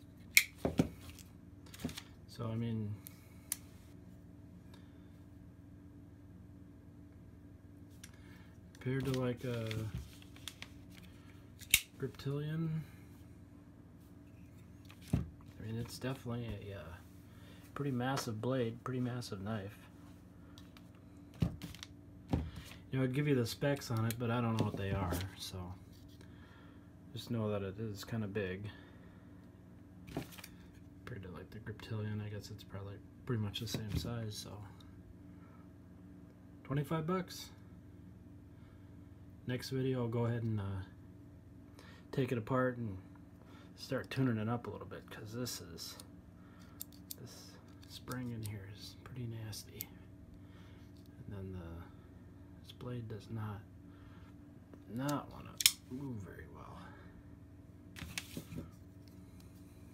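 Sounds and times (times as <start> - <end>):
faint steady hum: 0.0 - 59.9
folding knives clicking: 11.6 - 11.9.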